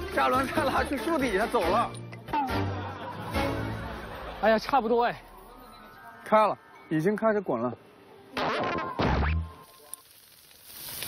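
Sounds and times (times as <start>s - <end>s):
meat sizzling on a grill: 9.6s - 11.0s.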